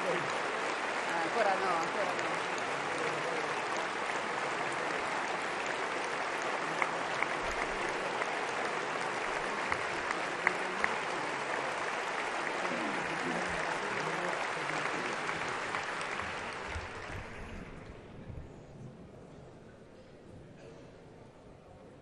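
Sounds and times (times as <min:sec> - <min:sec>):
sharp claps: 0:00.0 - 0:17.5
crowd applauding: 0:00.0 - 0:18.1.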